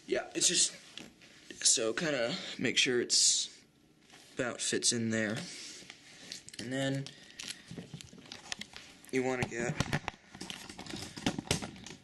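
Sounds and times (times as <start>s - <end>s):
soft rustling of handling: 0.1s - 2.1s.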